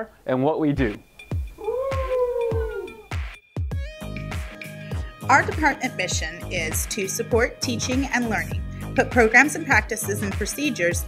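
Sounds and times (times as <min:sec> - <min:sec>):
thumping music beat: 0:00.8 - 0:11.0
long high wail: 0:01.6 - 0:03.2.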